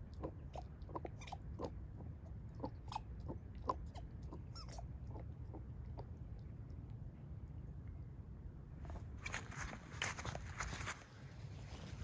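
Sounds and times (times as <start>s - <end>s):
dog chewing squeaky rubber ball: 0.1s - 5.7s.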